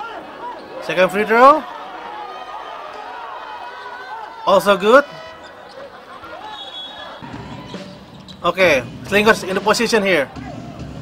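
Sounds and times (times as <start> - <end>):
faint crowd voices: 0.0 - 11.0
arena music: 4.3 - 11.0.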